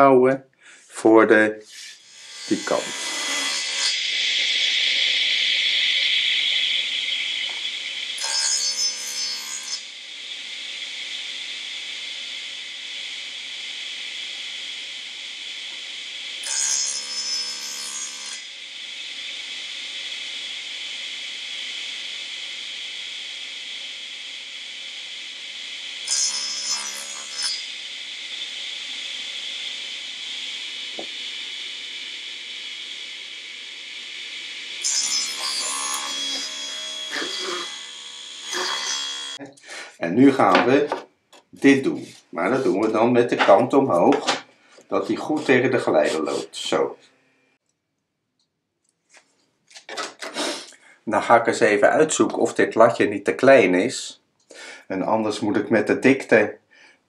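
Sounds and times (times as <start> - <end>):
table saw running: 1.6 - 39.4, 41.7 - 47.4
saw blade ripping wood: 34.8 - 39.4, 49.7 - 50.7.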